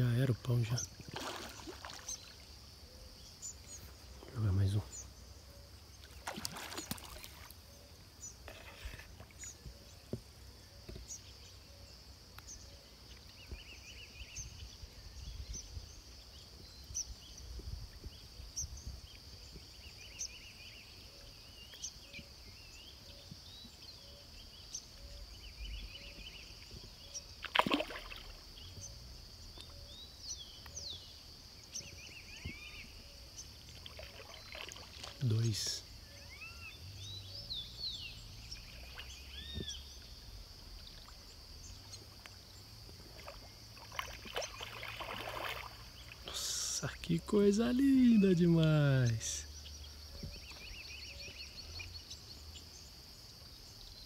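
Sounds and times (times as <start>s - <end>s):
faint bird chirps: 0.0s - 54.0s
fish splashing in water: 1.0s - 2.4s, 6.0s - 7.6s, 27.4s - 28.5s, 33.6s - 35.2s, 42.9s - 46.4s.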